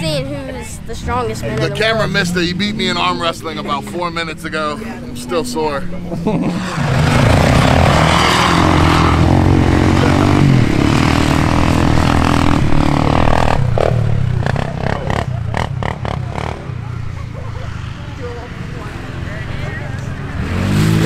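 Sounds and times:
off-road vehicle engine revving: 1.0 - 17.8, 18.4 - 21.0.

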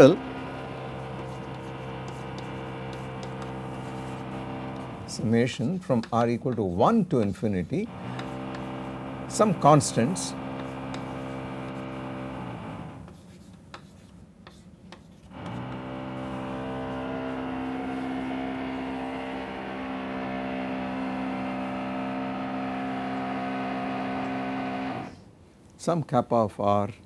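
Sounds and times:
steady multi-tone hum: 0.0 - 5.8, 15.2 - 25.2.

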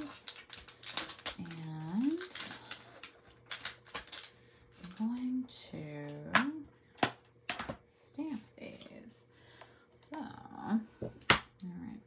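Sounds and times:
thin plastic clicks and crinkles: 0.0 - 5.2.

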